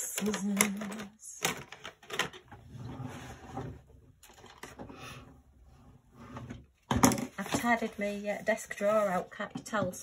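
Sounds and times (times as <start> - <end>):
objects clattering in a drawer: 0.0 - 5.0, 6.2 - 7.8.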